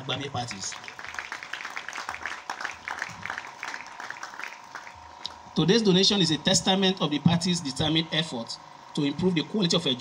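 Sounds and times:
audience applauding: 0.6s - 5.0s.

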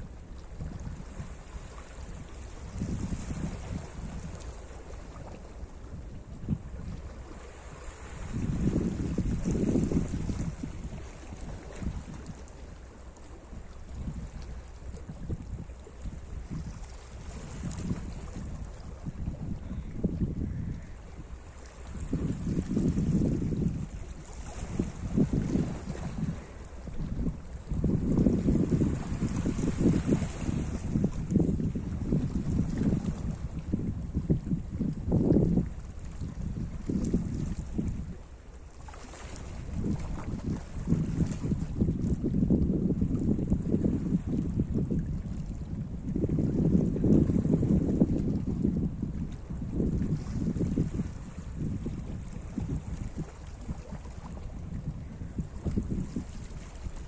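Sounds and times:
wind buffeting microphone: 0.0s - 38.3s, 39.0s - 57.0s.

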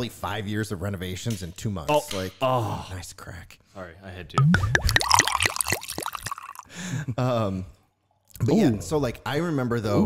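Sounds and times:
liquid glugging from a drink can: 4.4s - 6.7s.

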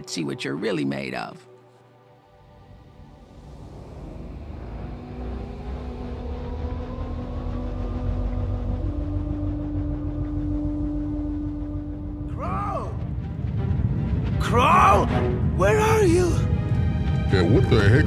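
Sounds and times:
faint rising tone: 1.9s - 14.4s
deep rumble: 2.3s - 18.0s.

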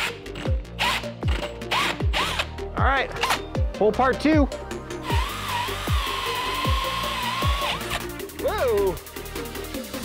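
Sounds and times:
background music with beat: 0.0s - 10.0s
drill cutting hole in wall: 5.0s - 8.0s.

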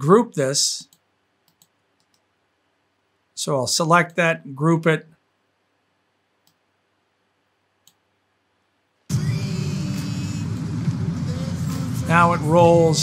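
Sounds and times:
faint mouse clicks: 0.8s - 2.3s, 6.4s - 6.7s, 7.8s - 8.0s
music playback: 9.1s - 13.0s.

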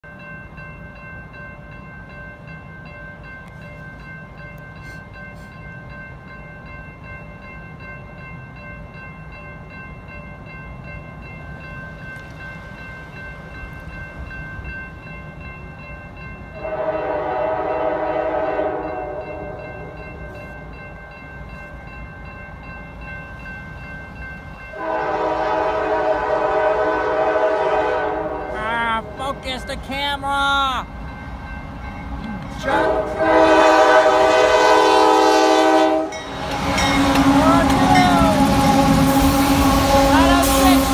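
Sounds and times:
train air horn: 16.6s - 19.6s, 24.8s - 28.6s, 32.6s - 40.9s
locomotive rumble: 21.4s - 40.9s.

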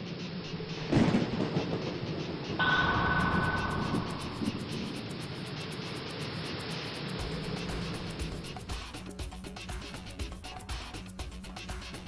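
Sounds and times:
held high tone: 2.6s - 5.3s
sudden hit: 2.6s - 5.3s.

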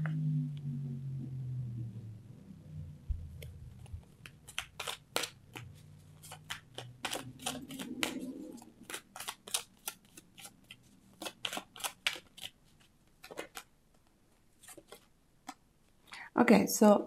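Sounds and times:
cards being shuffled: 3.4s - 15.6s.

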